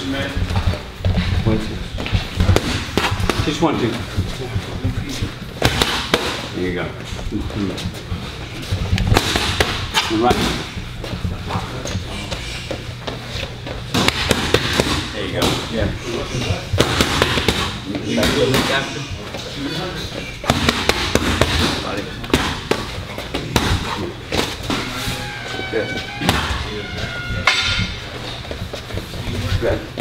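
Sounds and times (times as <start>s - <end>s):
boxing gloves smacking mitts: 2.0s - 3.7s, 5.6s - 6.4s, 8.8s - 10.7s, 13.4s - 15.7s, 16.7s - 18.8s, 20.4s - 24.8s.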